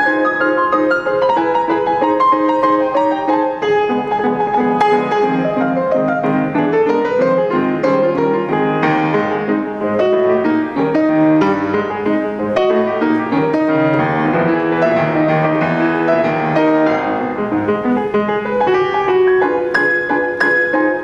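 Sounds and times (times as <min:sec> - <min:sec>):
grand piano playing: 0:00.0 - 0:21.0.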